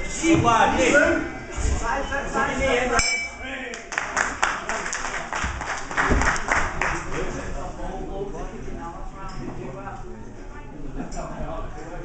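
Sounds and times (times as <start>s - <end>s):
hands clapping rapidly: 3.7s - 7.3s.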